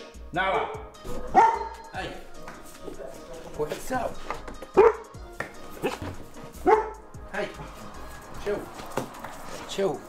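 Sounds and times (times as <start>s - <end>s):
dog barking: 0.6s - 1.9s, 4.7s - 5.2s, 6.6s - 7.1s.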